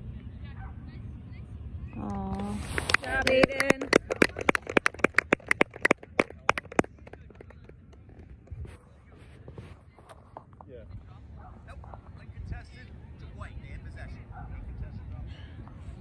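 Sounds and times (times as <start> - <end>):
voice: 2.0 - 4.3
person clapping: 2.1 - 8.5.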